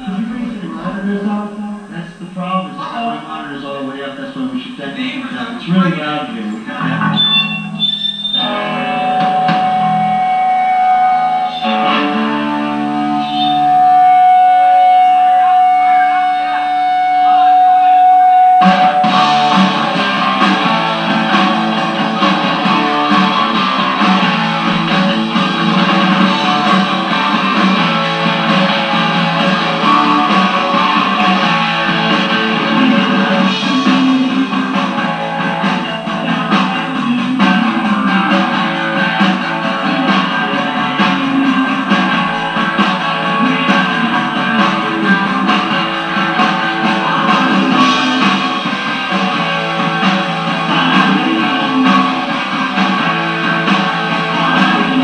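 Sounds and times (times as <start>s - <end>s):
live rock band playing loud: 4.4s - 55.0s
ringing electric guitar notes: 6.7s - 55.0s.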